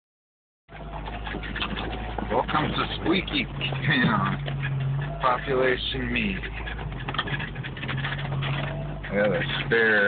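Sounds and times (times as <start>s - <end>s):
engine and drivetrain rumble: 0.7s - 10.0s
spare tire squeaking: 0.7s - 10.0s.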